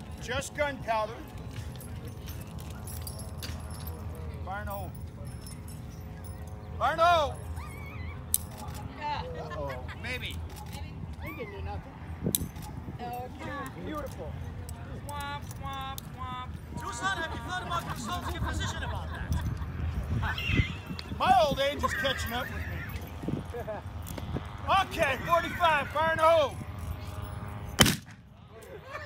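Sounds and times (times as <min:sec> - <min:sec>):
revolver firing: 0:27.8 - 0:28.2
person laughing high-pitched: 0:28.6 - 0:29.0.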